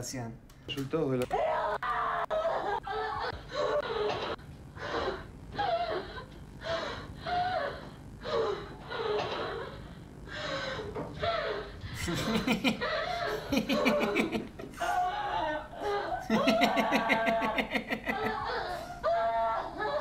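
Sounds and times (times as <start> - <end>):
woman sobbing and wailing: 1.3 - 9.8, 10.5 - 20.0.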